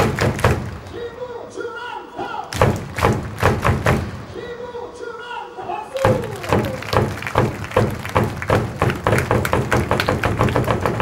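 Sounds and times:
stadium music: 0:00.0 - 0:11.0
heavy thumps: 0:06.0 - 0:11.0.

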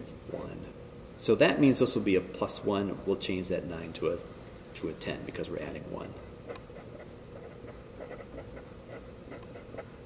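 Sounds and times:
marker writing on paper: 0:06.5 - 0:10.0.

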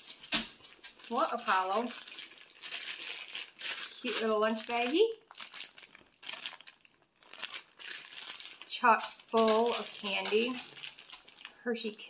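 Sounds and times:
plastic bag and wrappers crinkling: 0:00.0 - 0:12.0.

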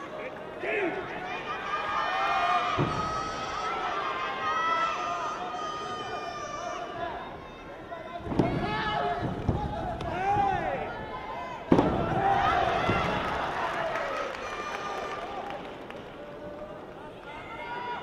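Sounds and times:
people shouting: 0:08.4 - 0:15.2.

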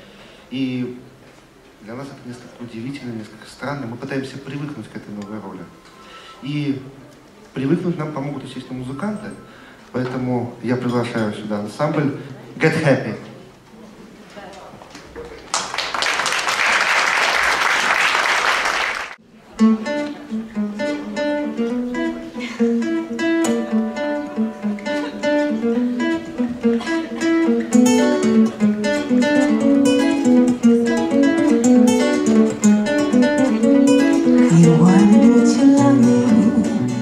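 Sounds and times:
audience applause: 0:15.4 - 0:19.2
acoustic guitars plucking: 0:19.4 - 0:37.0.

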